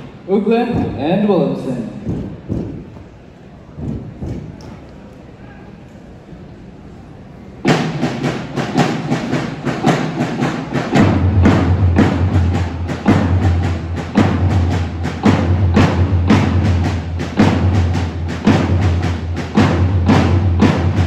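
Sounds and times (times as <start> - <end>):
marching drum cadence: 0.0 - 4.9, 7.6 - 21.0.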